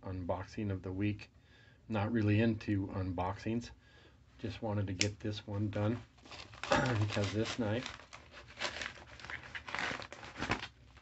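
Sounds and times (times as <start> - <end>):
paper mailer crinkling: 6.2 - 11.0
knife slitting paper: 6.3 - 10.7.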